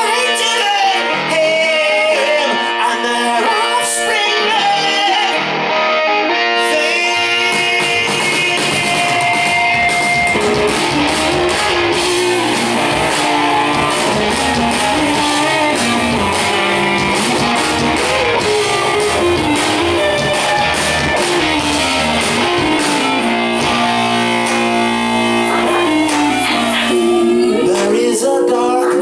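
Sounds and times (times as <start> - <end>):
electric guitar lines: 0.0 - 29.0
live rock band playing: 0.0 - 29.0.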